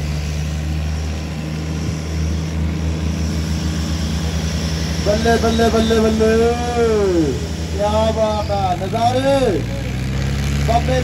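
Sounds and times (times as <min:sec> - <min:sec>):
tractor diesel engines under load: 0:00.0 - 0:11.0.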